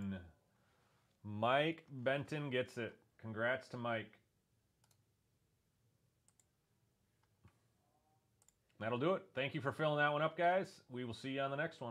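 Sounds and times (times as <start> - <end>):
computer mouse clicks: 4.8 - 5.1, 6.2 - 6.5, 8.4 - 8.8.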